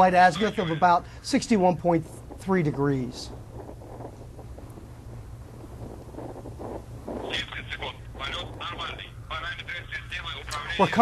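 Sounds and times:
distant rocket engine rumble: 0.0s - 11.0s
wind-like hiss: 0.0s - 11.0s.

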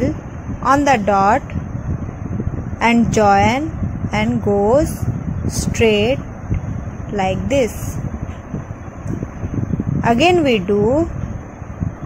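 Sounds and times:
air buffeting microphone: 0.0s - 12.0s.

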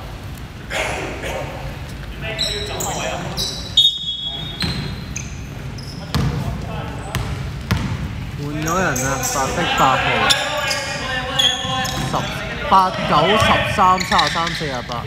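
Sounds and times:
indistinct voices echoing: 0.0s - 4.9s, 8.1s - 15.0s
sneakers squeaking: 0.9s - 15.0s
basketball bouncing on wooden floor: 6.1s - 6.4s, 7.1s - 8.2s.

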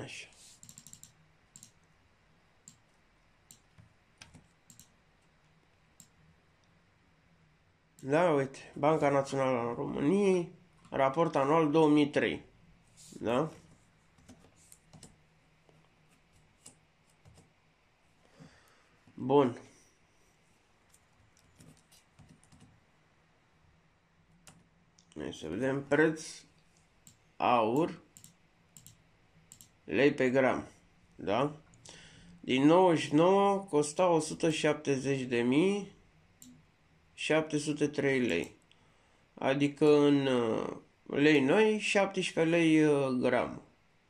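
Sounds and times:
faint computer mouse clicks: 27.8s - 29.7s.

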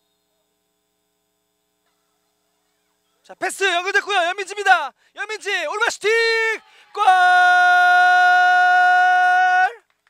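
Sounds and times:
commentator shouting goal: 3.3s - 9.8s.

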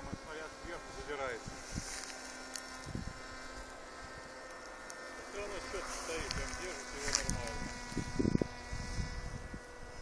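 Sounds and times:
wind on microphone: 0.0s - 2.0s, 2.8s - 4.3s, 5.6s - 10.0s
electric motor whine: 0.0s - 10.0s
man talking: 5.2s - 7.6s.

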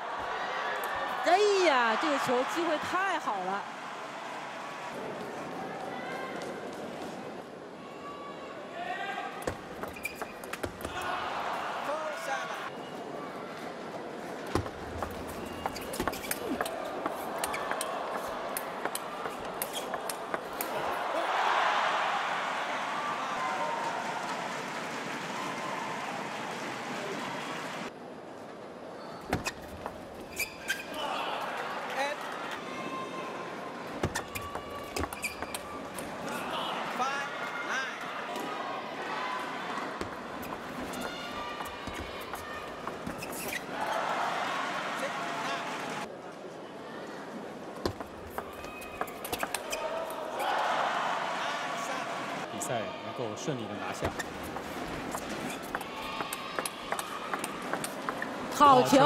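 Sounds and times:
crowd shouting and cheering: 0.0s - 6.8s, 10.6s - 13.5s, 15.1s - 27.9s, 30.9s - 46.1s, 48.3s - 59.0s.

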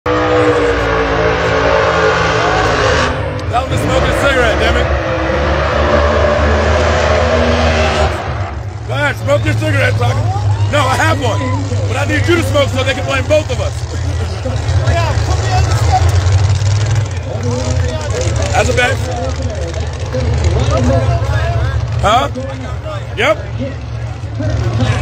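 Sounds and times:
drag race cars at full throttle: 0.0s - 25.0s
spectators' voices: 0.1s - 25.0s.

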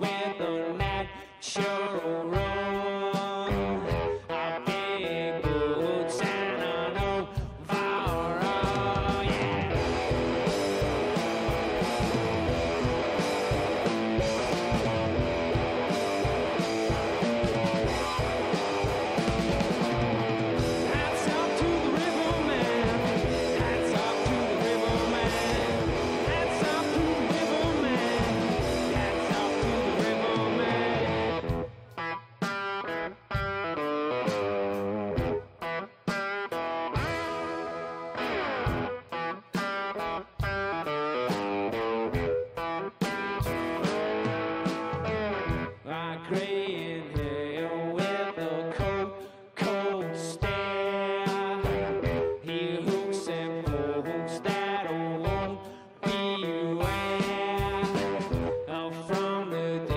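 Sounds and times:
drum kit: 0.0s - 59.9s
electric guitar: 0.0s - 59.9s.

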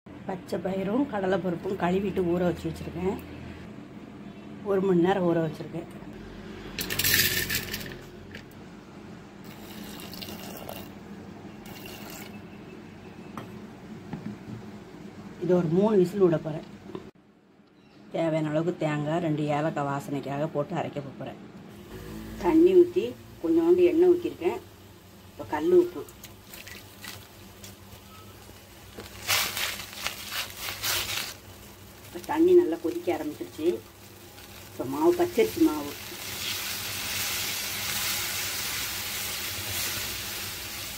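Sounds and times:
water poured and splashing: 26.1s - 27.3s.

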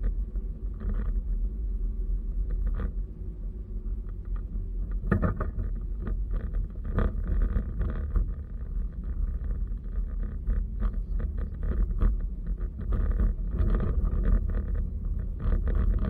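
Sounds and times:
car driving rumble: 0.0s - 16.0s
road noise: 0.0s - 16.0s.

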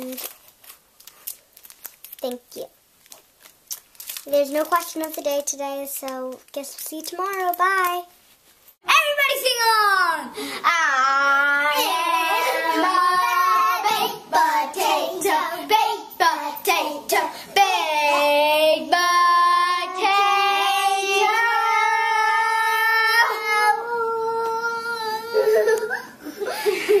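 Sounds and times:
child singing slow song: 10.2s - 26.0s.

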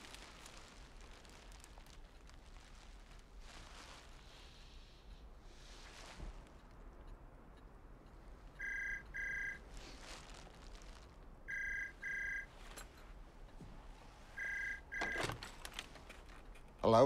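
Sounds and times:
telephone ringing: 8.6s - 9.7s, 11.5s - 12.5s, 14.4s - 15.4s.

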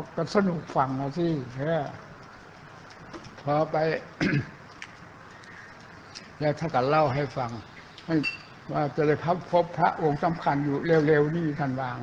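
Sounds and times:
man speaking: 0.0s - 2.0s, 3.4s - 4.4s, 6.4s - 12.0s
steady low hiss: 0.0s - 12.0s.

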